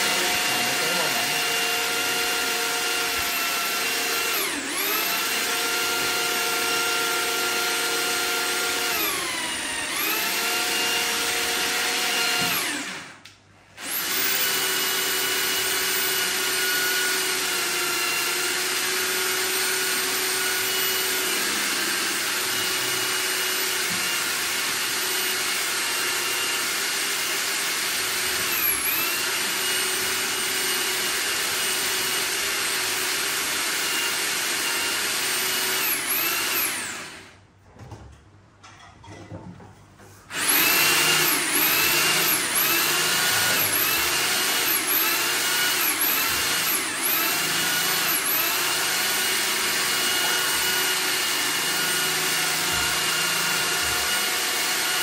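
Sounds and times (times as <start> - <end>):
electric drill motor whine: 0.0 - 13.2, 13.8 - 37.4, 40.3 - 55.0.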